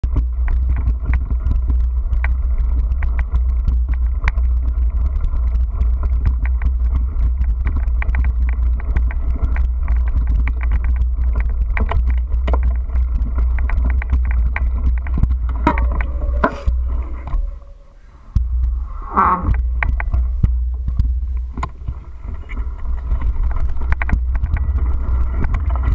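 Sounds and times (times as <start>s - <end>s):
rattles and knocks over bumps: 0.0s - 25.9s
vehicle rumbling over dirt track: 0.0s - 25.9s.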